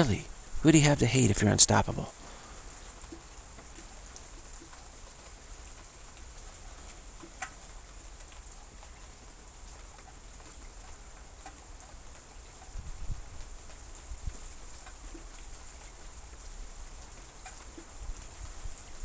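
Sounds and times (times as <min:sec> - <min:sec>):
steady rain hiss: 0:00.0 - 0:19.0
faint drip ticks: 0:02.1 - 0:19.0.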